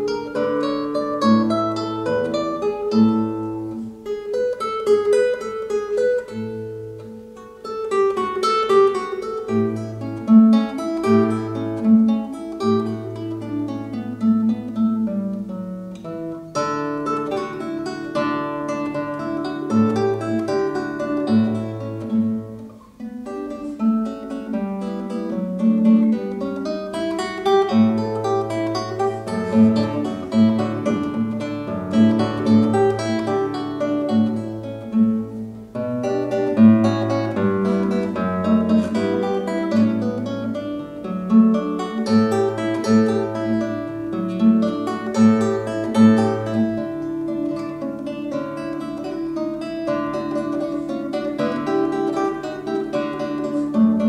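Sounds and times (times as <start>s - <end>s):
classical guitar fingerstyle: 0.0s - 54.0s.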